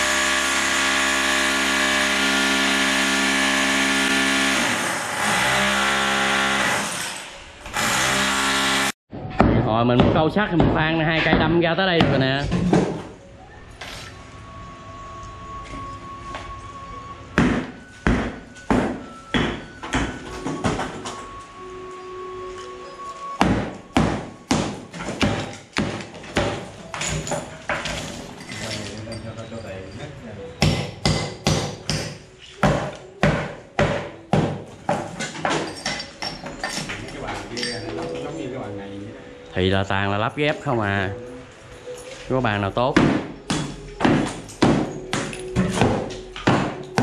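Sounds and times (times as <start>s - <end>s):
background music with held notes: 10.6s - 47.0s
hammer knocking on chisel: 43.0s - 47.0s.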